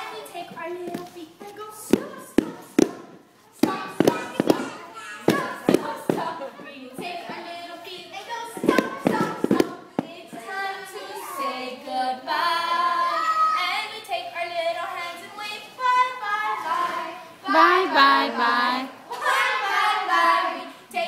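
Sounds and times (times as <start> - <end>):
voices: 0.0 - 21.0.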